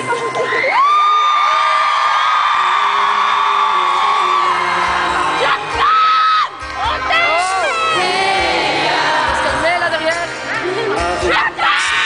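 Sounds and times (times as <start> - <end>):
fans screaming: 0.0 - 8.8, 11.3 - 12.0
live music: 0.0 - 12.0.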